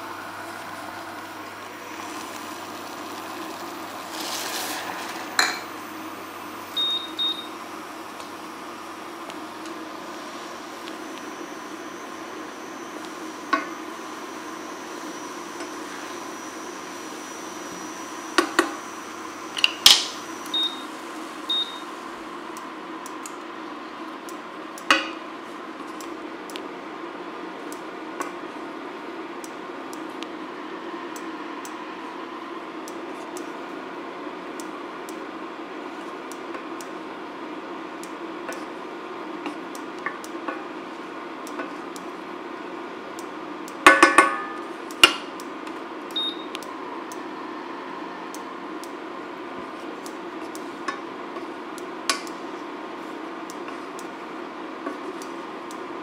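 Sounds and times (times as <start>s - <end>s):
induction hob humming: 0.0s - 56.0s
short high beeps: 6.8s - 7.5s.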